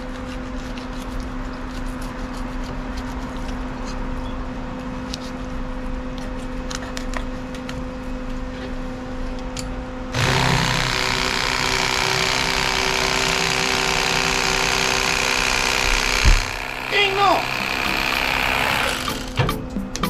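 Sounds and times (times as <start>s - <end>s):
electric knife sawing fish: 10.2s - 19.4s.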